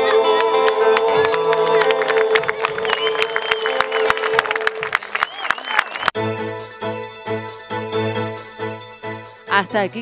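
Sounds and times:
crowd cheering: 0:00.0 - 0:06.2.

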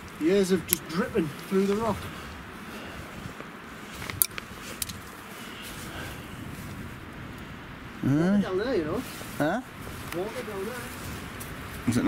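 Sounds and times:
wind rushing through forest: 0:00.0 - 0:12.0.

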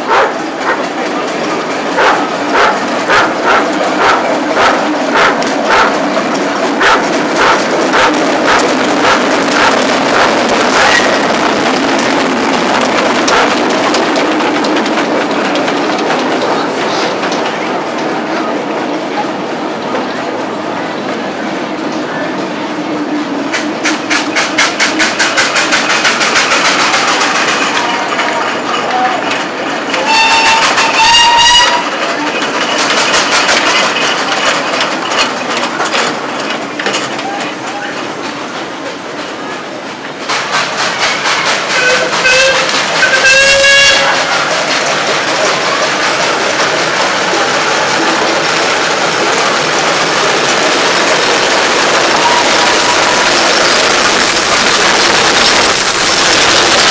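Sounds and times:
steam engine beat: 0:00.0 - 0:18.8, 0:23.2 - 0:28.1, 0:39.5 - 0:56.9
steam whistle: 0:30.0 - 0:31.8, 0:41.8 - 0:44.2.

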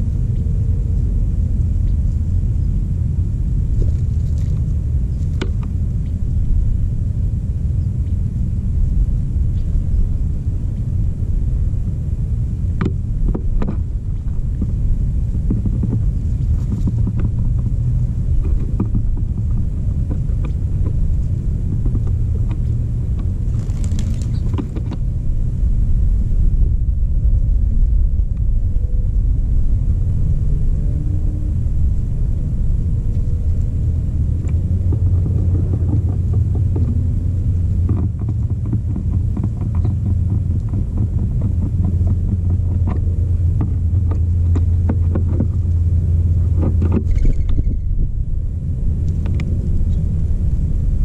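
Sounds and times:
low wind rumble on microphone: 0:00.0 - 0:51.0
rustle: 0:03.6 - 0:11.8, 0:13.0 - 0:25.9
doves pecking seed: 0:03.7 - 0:06.2, 0:15.4 - 0:25.0, 0:46.4 - 0:47.9.

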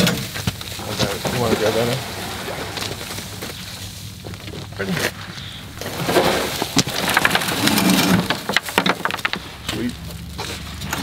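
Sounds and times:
branches rustling: 0:00.0 - 0:11.0
soil pattering and spilling: 0:00.0 - 0:11.0.

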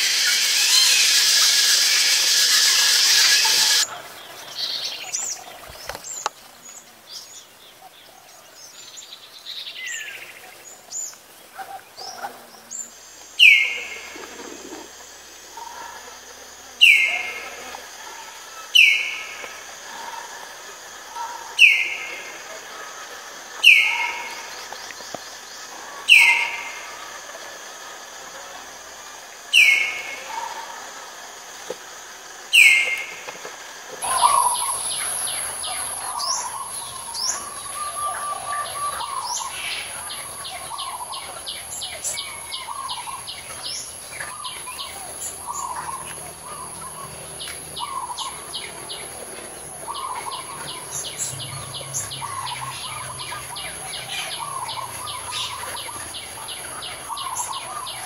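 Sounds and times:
high insect buzz: 0:00.0 - 0:03.9, 0:26.8 - 0:58.0
myna whistling calls: 0:00.0 - 0:03.9, 0:34.0 - 0:49.0
small birds chirping: 0:00.0 - 0:08.0, 0:34.0 - 0:58.0.

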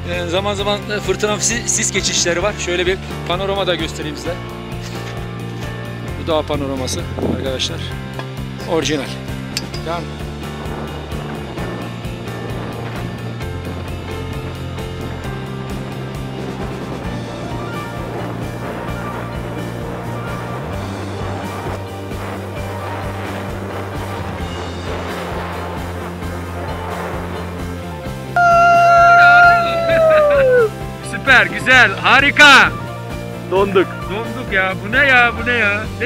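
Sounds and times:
background music low chords: 0:00.0 - 0:36.0
person's held call: 0:28.4 - 0:30.7.

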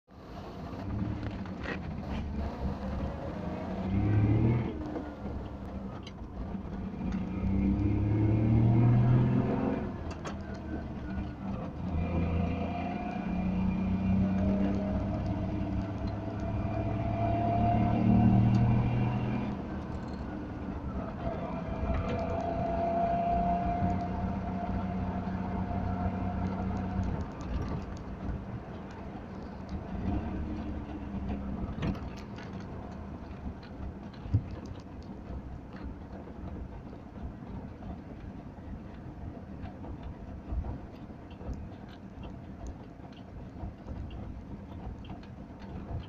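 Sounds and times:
two-stroke car engine accelerating: 0:00.2 - 0:38.3.

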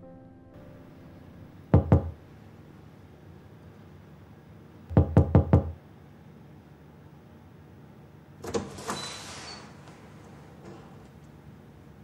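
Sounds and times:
knuckles knocking on door: 0:01.8 - 0:02.2, 0:04.9 - 0:05.8.

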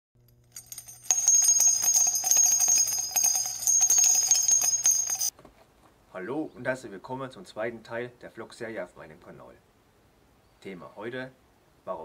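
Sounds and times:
jingle of ringing bells: 0:00.5 - 0:05.3.

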